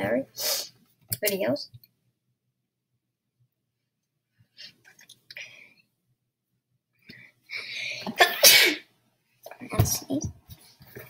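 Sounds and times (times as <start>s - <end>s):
boy sneezing: 8.1s - 8.9s.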